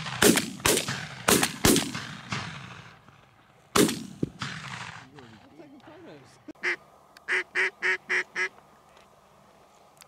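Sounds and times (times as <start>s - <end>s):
duck quacking: 6.6s - 8.6s.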